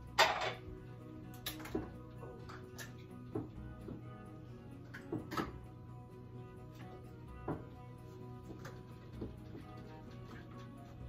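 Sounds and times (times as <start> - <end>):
background music: 0.0 - 11.0
dishes clacking: 0.1 - 0.7.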